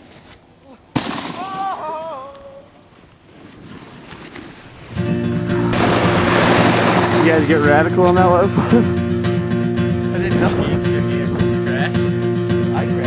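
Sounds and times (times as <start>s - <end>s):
guitar song: 4.9s - 13.0s.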